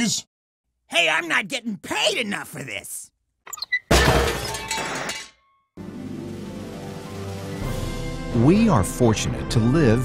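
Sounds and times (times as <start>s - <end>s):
glass shattering: 3.8s - 5.6s.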